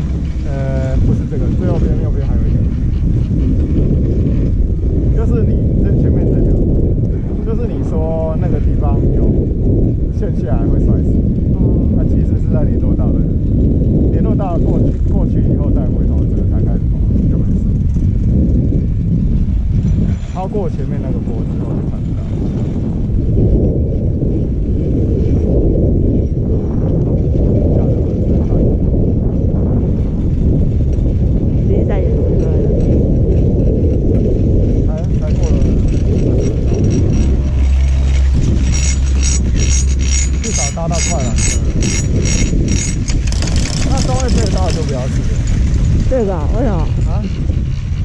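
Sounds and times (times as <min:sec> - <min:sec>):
wind noise on microphone: 0:00.0 - 0:48.0
rapid mechanical clatter: 0:32.4 - 0:48.0.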